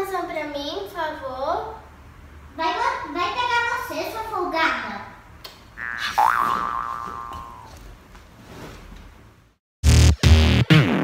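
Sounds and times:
cartoon boing sound effect: 5.8 - 7.8
music: 9.8 - 11.0.

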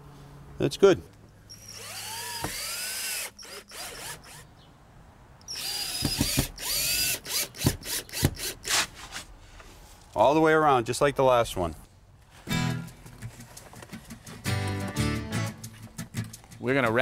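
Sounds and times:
cordless drill driving screws: 1.5 - 4.5, 5.4 - 8.9
drill clutch sharp clicks: 1.5 - 4.5, 5.4 - 8.7.

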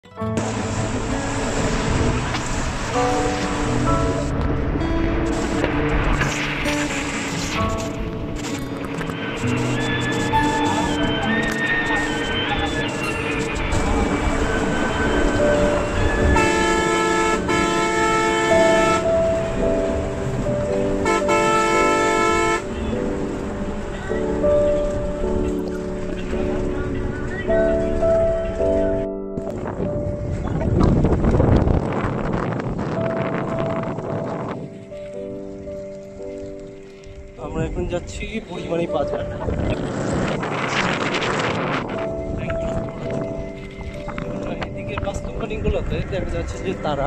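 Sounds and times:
background music with held notes: 0.0 - 47.0
bus running on road: 0.2 - 34.6
bus horn honking: 14.2 - 19.6, 20.9 - 22.9.

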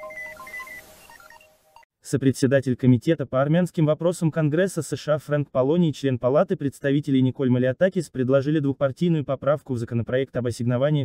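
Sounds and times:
electronic news jingle beeping: 0.0 - 1.9.

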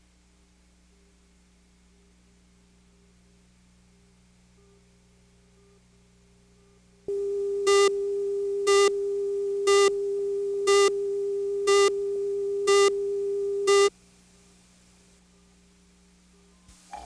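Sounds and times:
steady mid-pitched tone: 7.1 - 13.9.

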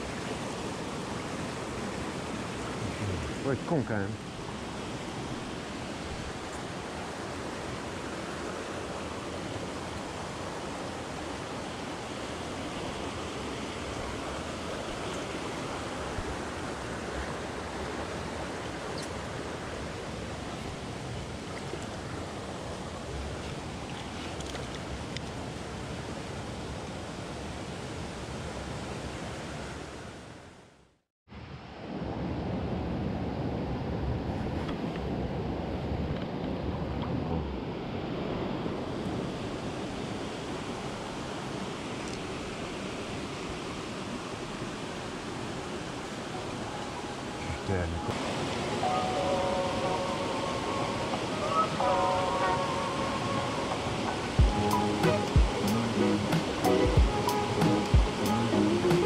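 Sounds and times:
stream running over rocks: 0.0 - 30.4, 36.4 - 59.0.

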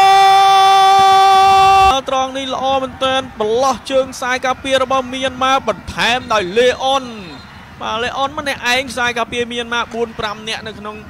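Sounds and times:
commentator shouting: 0.0 - 11.0.

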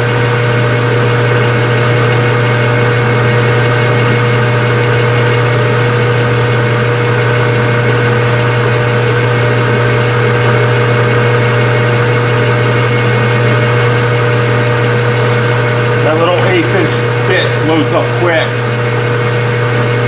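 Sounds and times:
metal lathe motor humming: 0.0 - 20.0.

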